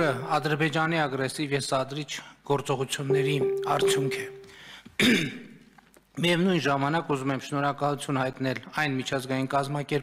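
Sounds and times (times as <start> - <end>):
man speaking: 3.0 - 4.5
man clearing throat: 5.0 - 5.4.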